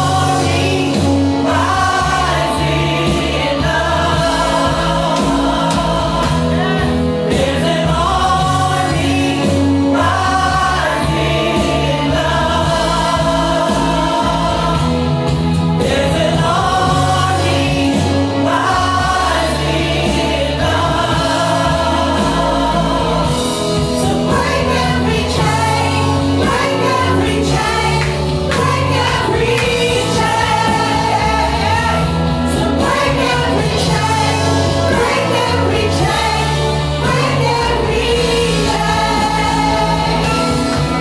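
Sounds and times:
instrumental accompaniment: 0.0 - 41.0
women singing gospel song: 0.0 - 41.0.

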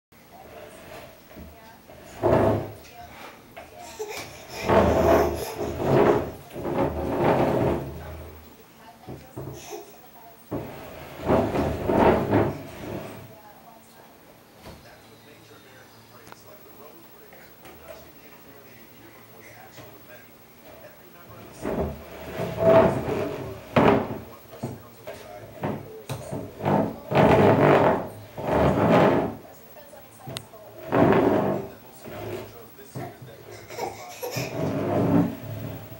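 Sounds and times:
table legs scraping wooden floor: 0.3 - 8.5, 9.1 - 9.8, 10.5 - 13.4, 20.6 - 29.6, 30.2 - 35.9.

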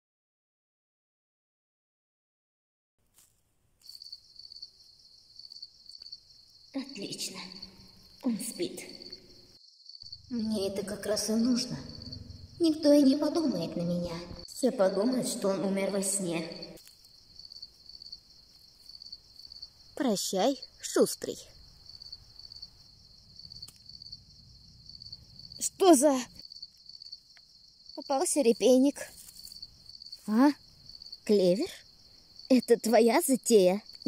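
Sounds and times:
crickets chirping: 3.2 - 34.0.

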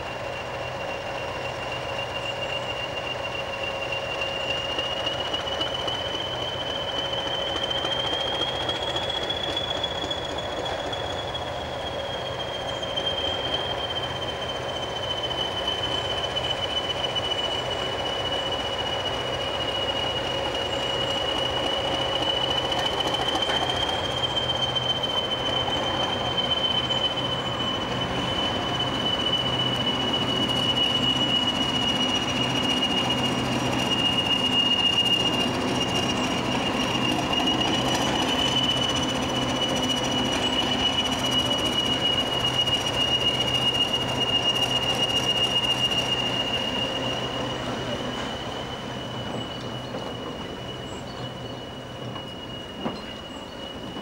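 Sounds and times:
train engine hum and rumble: 0.0 - 54.0
train wheel squeal: 0.0 - 54.0.

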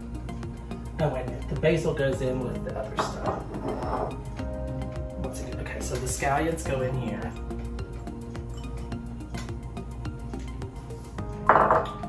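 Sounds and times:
background music: 0.0 - 12.0
glass bowl set on counter: 11.4 - 12.0.

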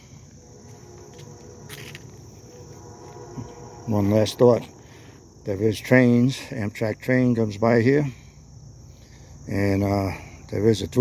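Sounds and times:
high-pitched insect chorus: 0.0 - 11.0
short scuffing noise: 0.6 - 3.6.

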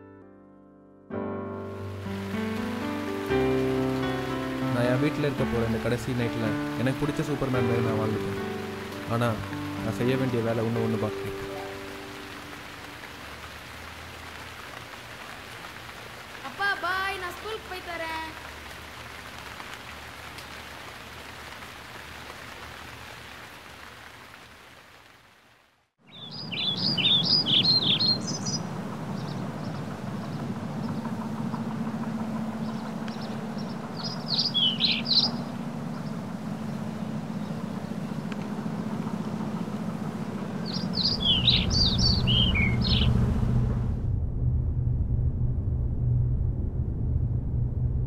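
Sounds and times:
small birds chirping: 26.0 - 43.2
low rumble: 26.8 - 48.0.

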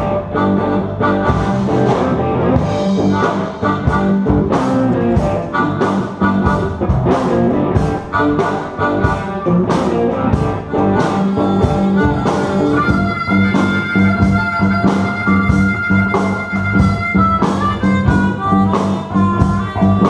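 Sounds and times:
blues band playing: 0.0 - 20.0
harmonica: 0.0 - 20.0.

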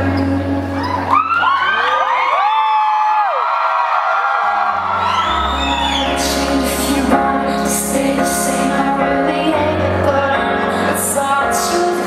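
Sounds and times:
audience whooping and cheering: 0.7 - 6.6.

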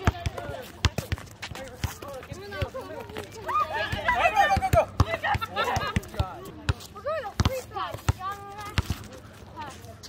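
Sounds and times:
players calling out: 0.0 - 9.2.

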